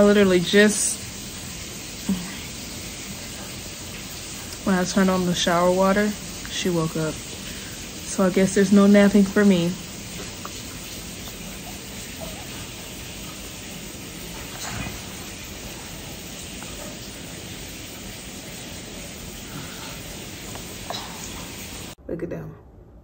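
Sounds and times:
shower water running: 0.0s - 22.0s.

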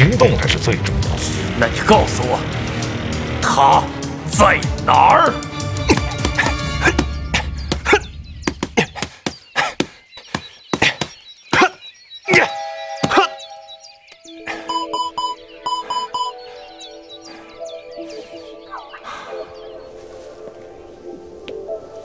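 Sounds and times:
background music with pulsing tones: 0.0s - 8.4s, 12.5s - 22.0s.

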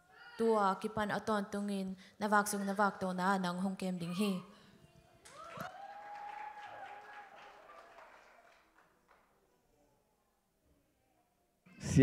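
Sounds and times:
audience applause: 5.2s - 9.4s.

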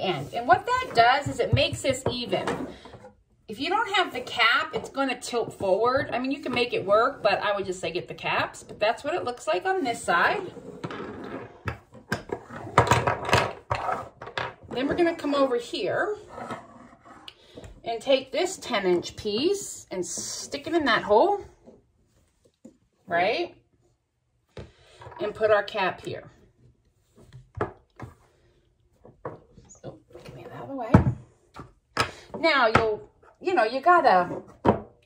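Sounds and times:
plastic pipes knocking and clattering: 0.6s - 3.2s, 11.6s - 15.2s.

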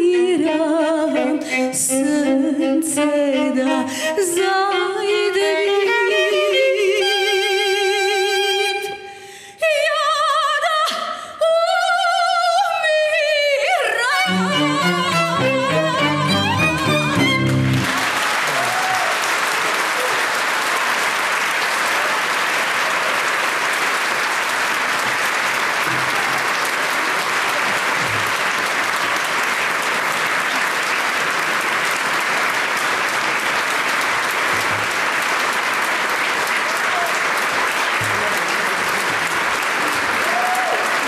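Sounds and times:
music: 0.0s - 9.0s, 13.9s - 18.6s
audience applauding: 14.3s - 41.0s.

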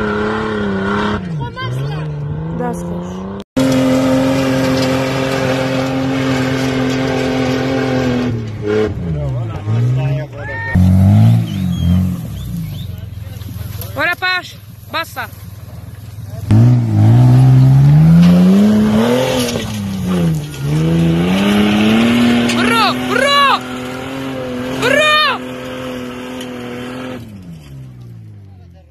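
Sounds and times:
engine revving hard: 0.0s - 12.5s, 16.5s - 27.4s
onlookers shouting: 22.5s - 25.5s.

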